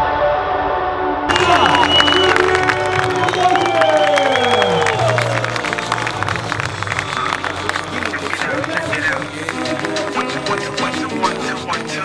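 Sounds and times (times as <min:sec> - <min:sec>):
crowd shouts: 0:01.3 - 0:11.5
crowd cheering and clapping: 0:01.3 - 0:12.0
music with bass line: 0:04.6 - 0:12.0.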